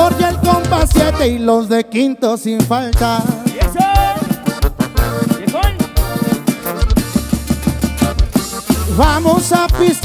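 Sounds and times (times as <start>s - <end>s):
drum kit: 0.0s - 1.5s, 2.6s - 10.0s
tuba bass: 0.0s - 1.6s, 2.8s - 10.0s
accordion: 0.0s - 10.0s
twelve-string guitar: 2.6s - 10.0s.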